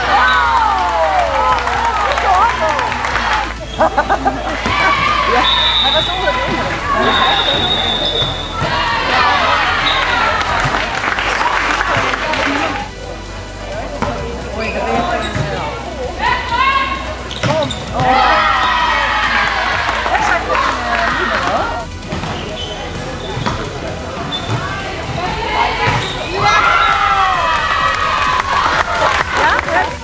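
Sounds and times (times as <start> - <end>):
girls shouting: 0.0 - 10.4, 18.0 - 21.8, 24.6 - 30.0
cheering: 0.0 - 12.9, 18.0 - 22.0, 24.5 - 30.0.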